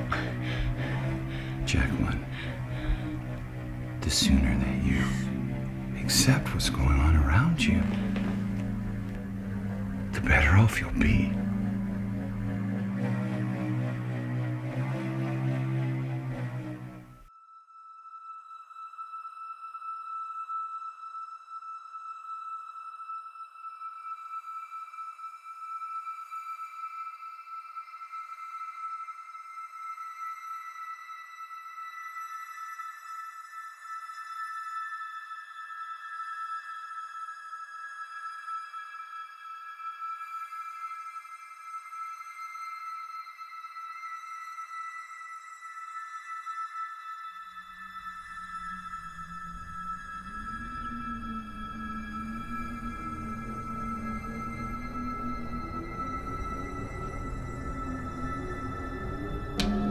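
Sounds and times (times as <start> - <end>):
eerie horror score drone: 0.0 - 17.1, 47.5 - 59.9
high sustained tones: 45.2 - 59.9.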